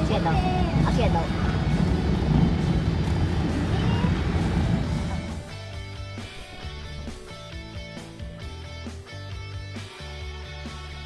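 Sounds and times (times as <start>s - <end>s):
road and engine rumble in car: 0.0s - 5.8s
guitar music: 0.0s - 11.0s.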